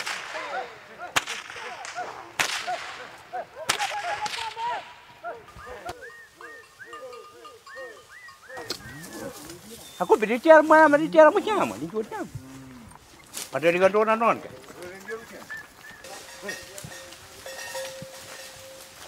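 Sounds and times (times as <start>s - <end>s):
whip cracks: 0.0s - 0.5s, 1.1s - 4.6s
repeated rising and falling calls: 5.2s - 11.0s.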